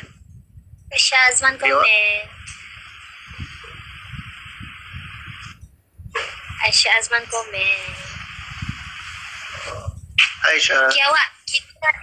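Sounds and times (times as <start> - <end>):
steady hiss: 2.3 - 5.6, 6.2 - 10.7.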